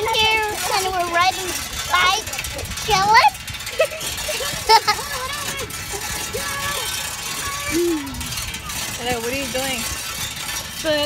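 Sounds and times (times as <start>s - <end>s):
pedal bike rattling: 0.0s - 11.0s.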